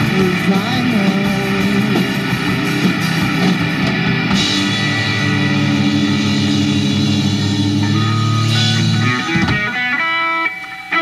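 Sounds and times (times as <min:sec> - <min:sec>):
electric guitar and bass droning: 0:00.0 - 0:11.0.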